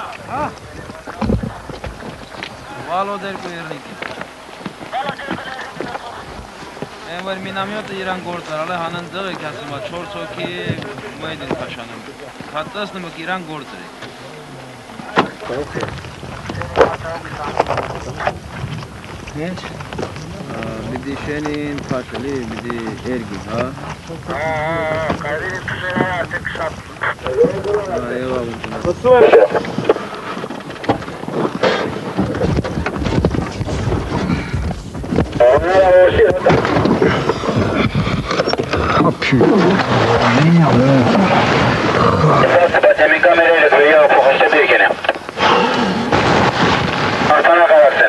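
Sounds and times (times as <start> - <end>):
wind rumbling on microphone: 0.0 - 12.8, 14.7 - 48.0
indistinct voices talking: 0.0 - 30.4, 31.4 - 46.1, 47.3 - 48.0
indistinct men's voices: 20.4 - 29.8, 35.4 - 38.0, 38.7 - 46.2, 47.2 - 48.0.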